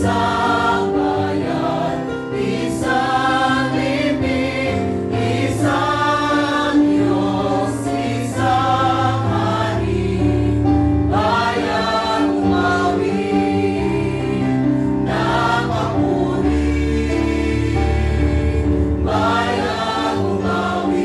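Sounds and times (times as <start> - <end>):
church choir singing a hymn: 0.0 - 21.0.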